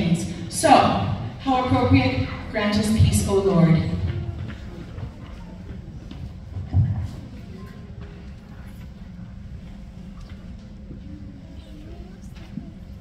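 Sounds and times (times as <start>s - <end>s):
faint voices in a hall: 0.0s - 13.0s.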